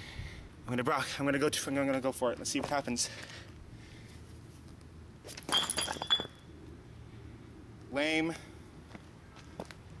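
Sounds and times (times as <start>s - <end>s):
brick hitting concrete: 5.5s - 6.4s.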